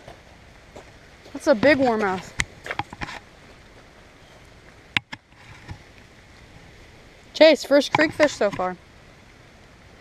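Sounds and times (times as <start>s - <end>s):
faint outdoor background noise: 0.0s - 10.0s.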